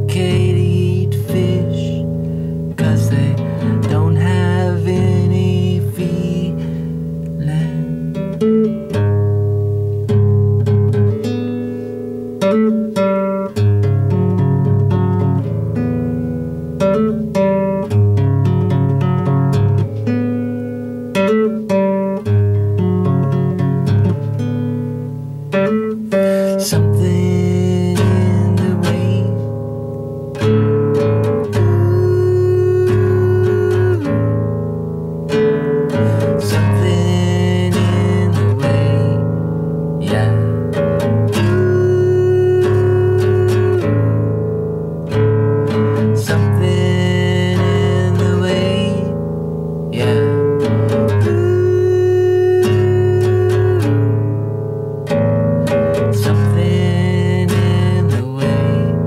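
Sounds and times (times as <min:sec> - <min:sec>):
acoustic guitar playing: 0:00.0 - 0:59.0.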